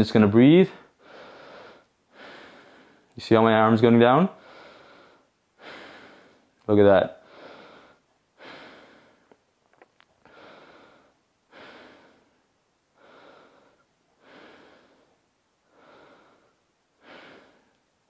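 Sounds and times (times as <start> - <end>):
man breathing slowly and deeply: 0.7 - 3.2, 4.3 - 6.6, 7.2 - 9.4, 10.2 - 17.8.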